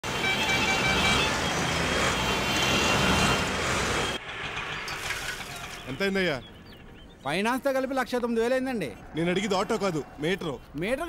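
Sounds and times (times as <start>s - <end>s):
car horn toots: 0.0s - 4.2s
city street traffic: 0.0s - 11.0s.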